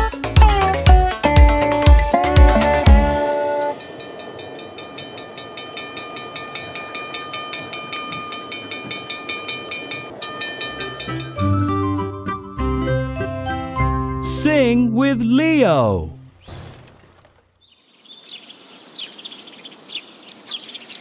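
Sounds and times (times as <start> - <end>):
music with bass line: 0.0 - 3.3
cartoon train chugging: 0.0 - 16.4
high ringing tone: 3.2 - 12.4.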